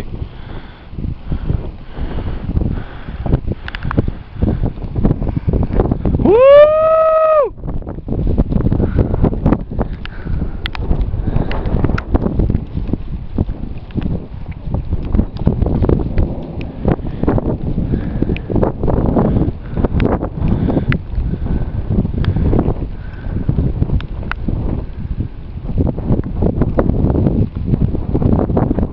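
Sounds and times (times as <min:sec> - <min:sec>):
wind buffeting microphone: 0:00.0 - 0:28.9.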